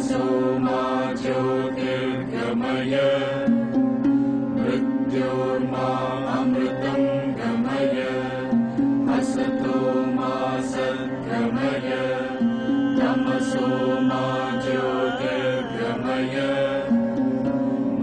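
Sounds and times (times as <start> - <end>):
person singing devotional chant: 0.0 - 3.8, 4.4 - 18.0
sustained drone: 0.0 - 18.0.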